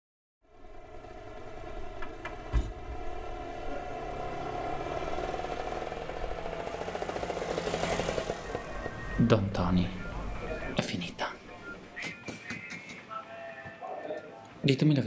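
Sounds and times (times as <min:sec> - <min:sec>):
motor scooter engine running: 0:00.5 - 0:10.6.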